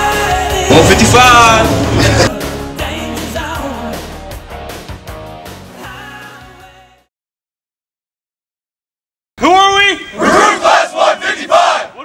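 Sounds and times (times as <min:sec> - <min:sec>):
group shouting a chant: 0:10.1 - 0:12.0.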